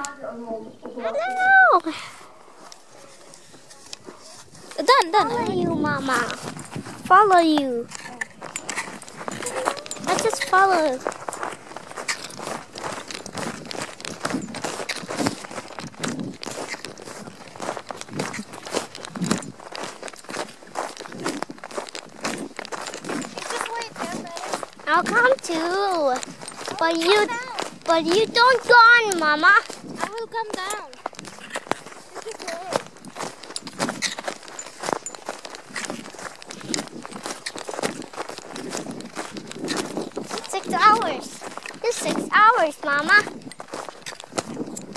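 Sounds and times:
footsteps crunching on snow: 0.8 - 44.9.

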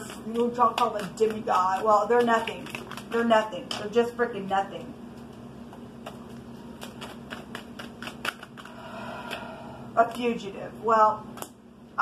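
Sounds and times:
cards being shuffled: 0.1 - 3.4, 5.2 - 8.8.

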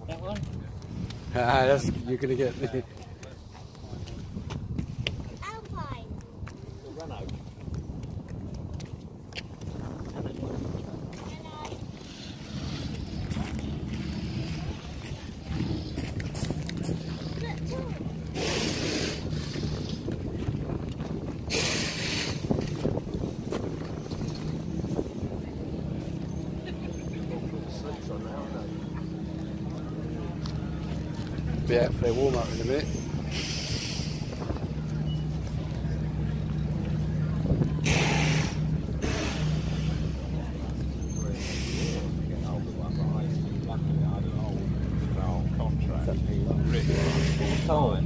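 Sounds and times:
outdoor ambience: 0.0 - 48.0
steady low drone: 6.6 - 48.0
background voices: 9.9 - 48.0
short hiss bursts: 18.3 - 19.4, 21.5 - 22.6, 32.4 - 34.3, 37.8 - 40.0.

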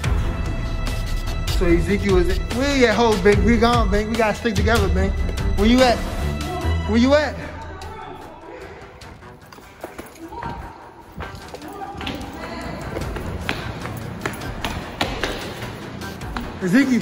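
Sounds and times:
background music: 0.0 - 17.0
footsteps: 3.6 - 6.1, 7.4 - 17.0.

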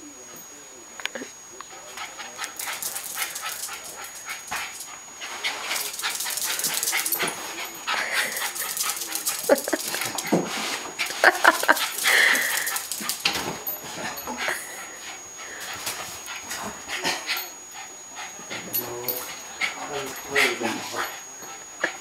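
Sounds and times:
dog scrambling with scuffs and clicks: 1.7 - 22.0.

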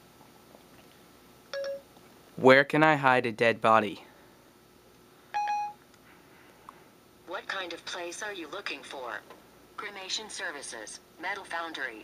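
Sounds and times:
short electronic beep: 5.4 - 5.8.

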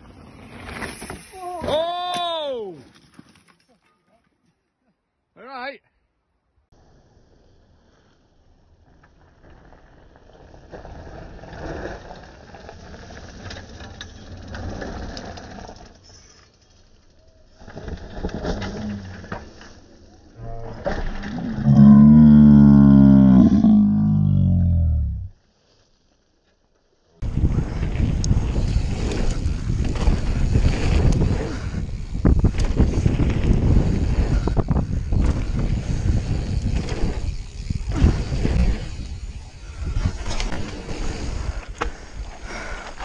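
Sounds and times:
person yelling: 1.4 - 2.8
bike tyres rumbling on gravel: 6.8 - 16.2, 27.2 - 43.0
wind buffeting microphone: 27.2 - 40.6.

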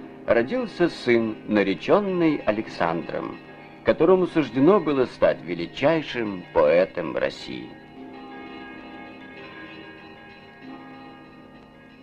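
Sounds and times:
bells struck slowly: 0.0 - 12.0.

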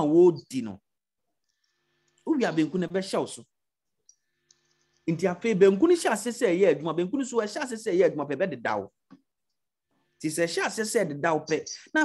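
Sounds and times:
man preaching: 2.3 - 3.4, 5.1 - 8.9, 10.2 - 12.0.

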